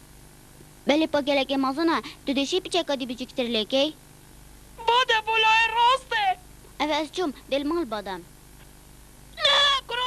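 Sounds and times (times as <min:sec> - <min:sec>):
dubbed dialogue: 0:04.7 - 0:08.3
cartoon character crying out: 0:09.4 - 0:10.0.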